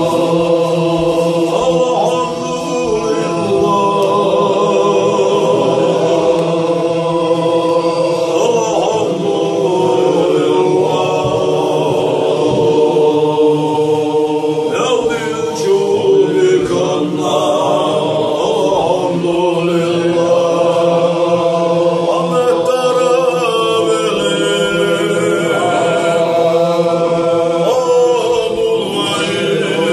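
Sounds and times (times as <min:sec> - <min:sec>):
men chanting together: 0:00.0 - 0:29.9.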